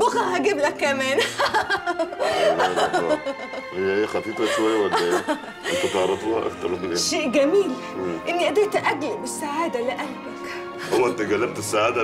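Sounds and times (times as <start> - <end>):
woman laughing: 1.2 - 3.7, 4.6 - 6.2.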